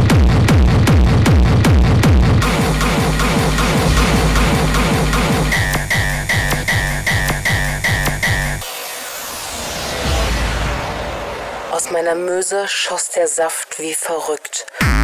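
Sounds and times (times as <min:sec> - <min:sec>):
kick drum: 0:00.0 - 0:06.9
bass line: 0:00.0 - 0:08.6
electronic dance music: 0:02.2 - 0:12.7
high synth stab: 0:02.4 - 0:12.2.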